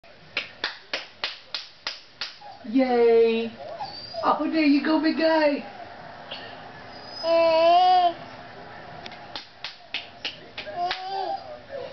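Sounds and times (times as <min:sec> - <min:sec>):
baby clapping hands: 0:00.4 - 0:02.4, 0:09.1 - 0:11.3.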